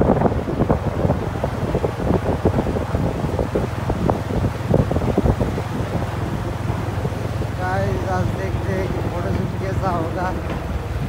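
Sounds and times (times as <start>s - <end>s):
motorbike engine hum: 0.0s - 11.0s
wind buffeting microphone: 0.0s - 11.0s
irregular knocks and clatter: 8.2s - 11.0s.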